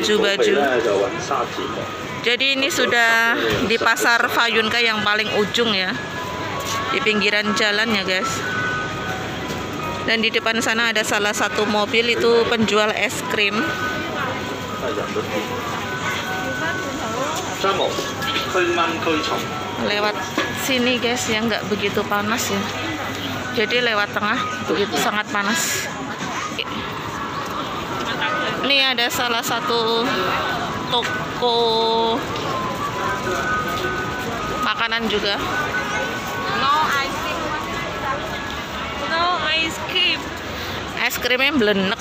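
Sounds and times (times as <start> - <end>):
crowd chatter: 0.0 - 42.0
ice cream van chime melody: 0.0 - 42.0
traffic noise: 0.0 - 42.0.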